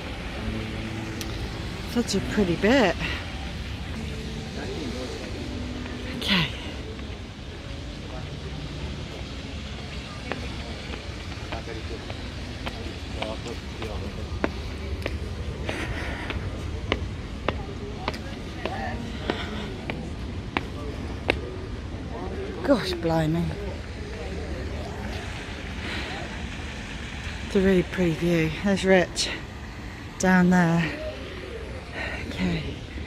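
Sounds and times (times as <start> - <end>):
people talking: 1.2 - 29.5, 30.1 - 33.0
footsteps on stone paving: 9.2 - 21.6.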